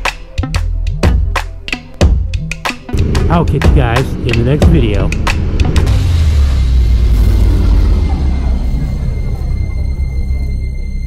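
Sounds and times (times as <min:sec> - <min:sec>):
dark soundtrack music: 0:00.0 - 0:11.0
deep steady rumble: 0:02.9 - 0:11.0.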